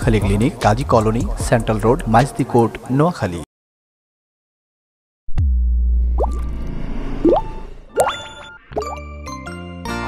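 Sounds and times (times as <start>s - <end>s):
rising bloop sound effects: 5.3s - 9.0s.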